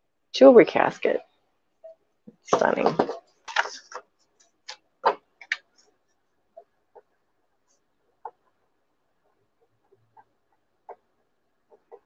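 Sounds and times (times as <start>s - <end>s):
person speaking: 2.4s - 3.8s.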